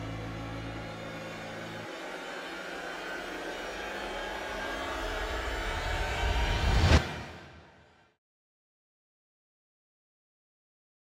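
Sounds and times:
low drone: 0.0 - 8.1
whooshing riser: 0.5 - 8.1.

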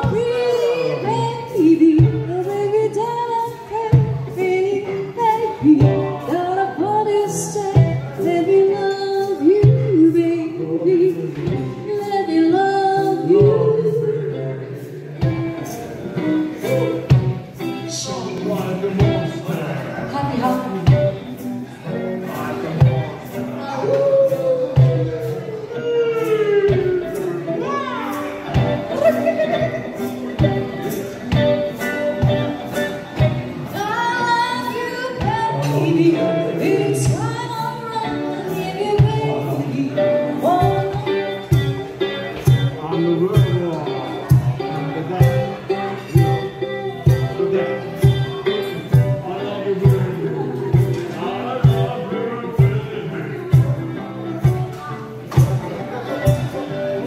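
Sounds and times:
woman singing into a microphone: 0.0 - 14.8, 33.7 - 41.5
acoustic guitar: 0.0 - 57.0
person crying out: 24.0 - 28.1.

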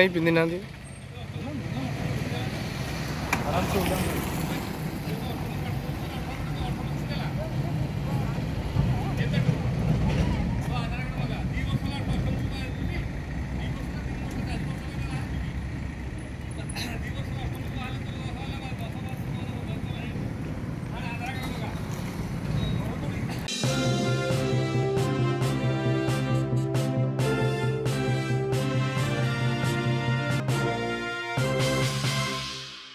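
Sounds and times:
vehicles passing: 0.0 - 32.8
music: 23.5 - 32.9.

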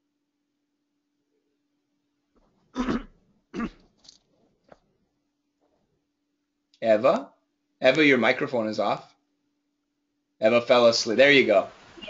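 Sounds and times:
person coughing: 2.7 - 3.9.

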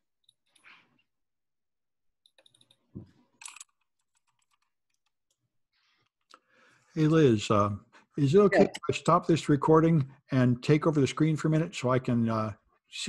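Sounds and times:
keyboard and mouse clicks: 2.3 - 5.4.

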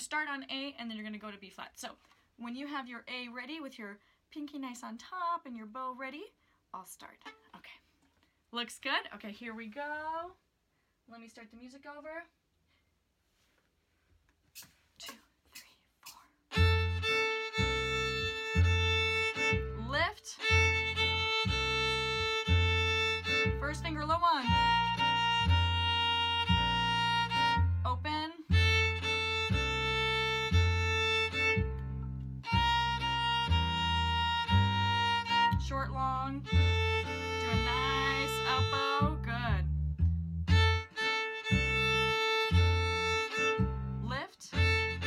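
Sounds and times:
violin playing long bowed notes: 16.5 - 39.4, 40.5 - 45.0
bass line backing track: 16.5 - 45.0.

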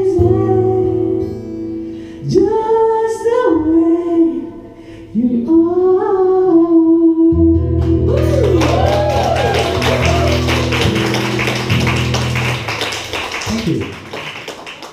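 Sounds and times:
acoustic guitar chords: 0.0 - 14.1
audience clapping: 7.8 - 14.9.

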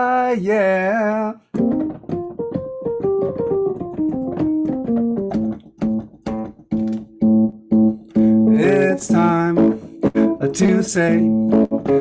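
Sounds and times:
person singing: 0.0 - 1.4, 8.2 - 12.0
electronic keyboard playing: 1.5 - 12.0.

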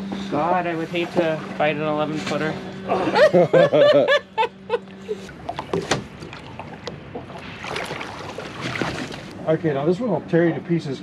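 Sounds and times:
water splashing: 4.8 - 9.4.

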